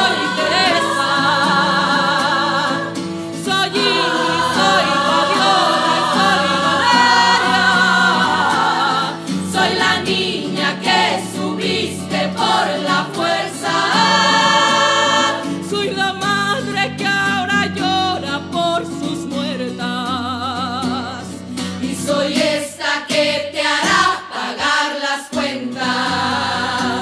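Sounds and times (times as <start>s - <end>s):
women's choir singing: 0.0s - 15.7s, 21.8s - 27.0s.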